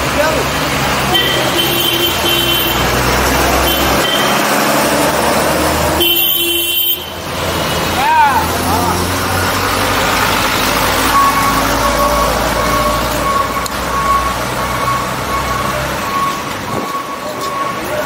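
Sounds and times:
street voices: 0.0s - 18.0s
vehicles running close by: 0.0s - 18.0s
horn toot: 1.1s - 3.0s, 5.9s - 7.3s
repeating short beep: 3.6s - 4.4s, 11.0s - 18.0s.

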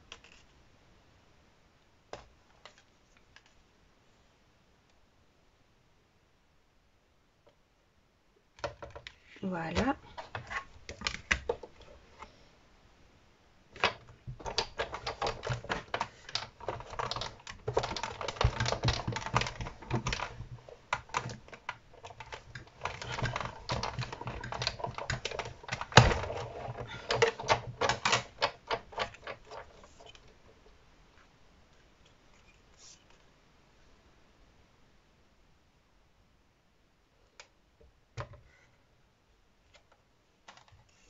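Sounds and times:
hand-cranked machine clicks and creaks: 13.8s - 30.6s.

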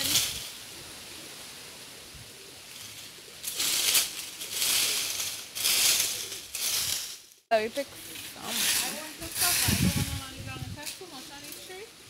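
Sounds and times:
rake scraping dry leaves: 0.0s - 0.6s, 2.6s - 11.9s.

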